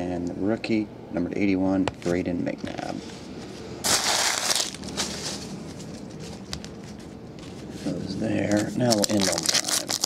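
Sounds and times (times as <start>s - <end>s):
foil wrapper crinkling: 3.8s - 7.0s, 8.4s - 10.0s.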